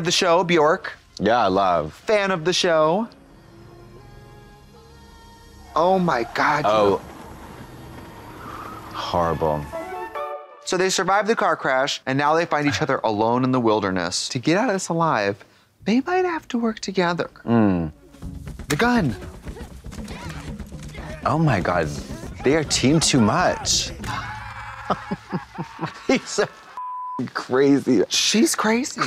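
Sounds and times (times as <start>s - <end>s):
low film score: 0.0s - 11.8s, 15.7s - 26.8s
car engine and tyres rumbling: 6.0s - 9.7s
knocking sounds: 18.2s - 24.4s.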